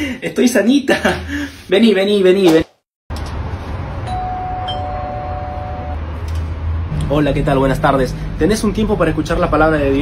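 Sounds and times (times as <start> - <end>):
two-note electronic doorbell chime: 4.1 - 6.0.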